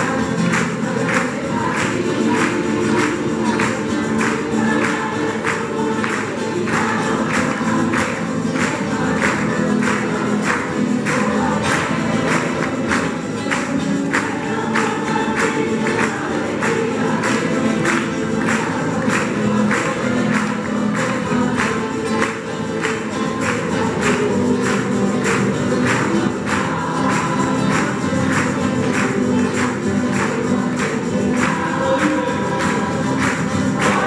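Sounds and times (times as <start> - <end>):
group singing in chorus: 0.0 - 34.0
strummed guitars: 0.0 - 34.0
tambourine beat: 0.0 - 34.0.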